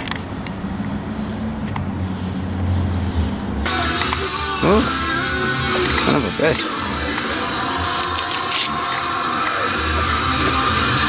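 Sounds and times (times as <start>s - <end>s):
song with vocals: 3.6s - 11.0s.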